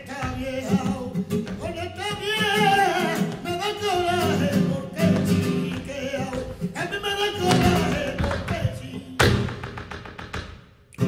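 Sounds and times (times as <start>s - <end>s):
person singing: 0.0s - 9.4s
dancer's feet stamping and tapping: 0.0s - 11.0s
guitar: 0.0s - 11.0s.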